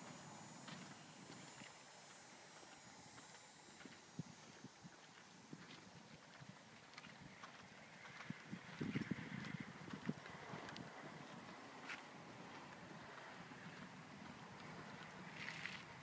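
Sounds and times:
horse hoofbeats on sand: 0.6 - 15.0.

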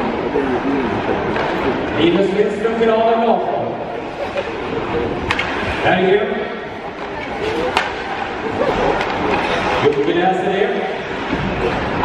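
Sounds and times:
crowd talking in arena: 0.0 - 12.0
hockey stick and puck clacks: 5.2 - 5.8, 7.0 - 8.2, 8.9 - 10.2.

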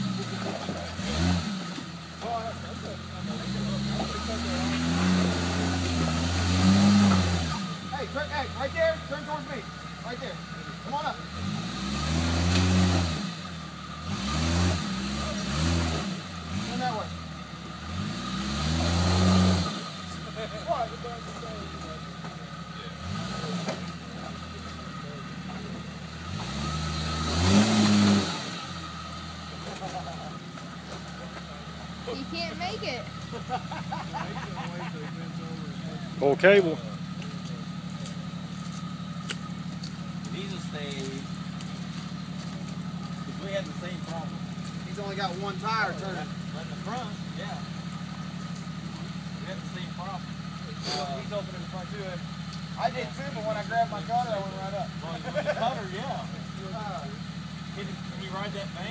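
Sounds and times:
engine revving hard: 0.0 - 9.6, 10.9 - 21.8, 22.9 - 37.3, 42.4 - 58.9.

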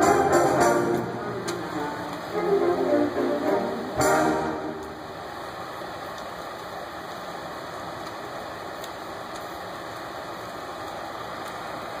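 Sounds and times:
auditorium hum and hiss: 0.0 - 12.0
faint clicks: 8.8 - 10.1.

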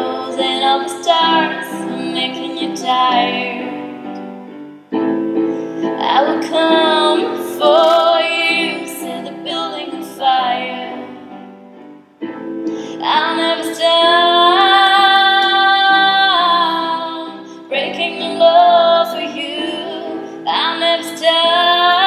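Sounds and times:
electric keyboard chords: 0.0 - 22.0.

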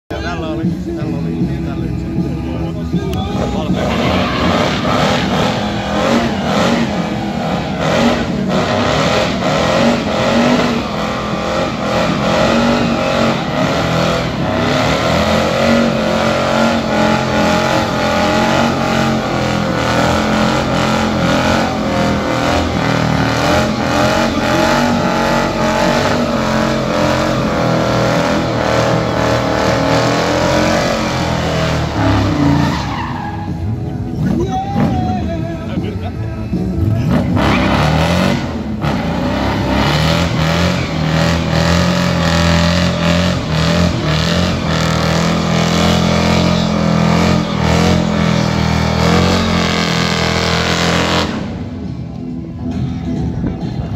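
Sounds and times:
car engine at high revs: 0.1 - 35.0, 36.6 - 52.8
tyres squealing: 3.1 - 35.0.

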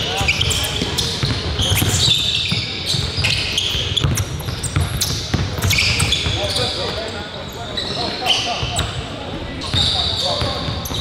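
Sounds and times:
players' voices: 0.0 - 11.0
sneaker squeaks: 0.0 - 11.0
basketballs bouncing on hardwood: 0.2 - 3.2, 4.0 - 6.4.

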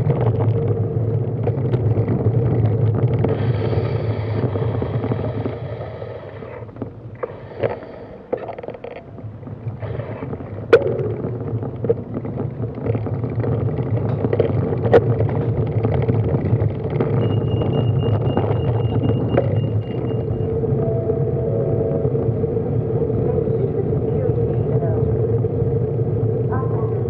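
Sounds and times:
car engine rumble: 0.0 - 27.0
road noise: 0.0 - 27.0.

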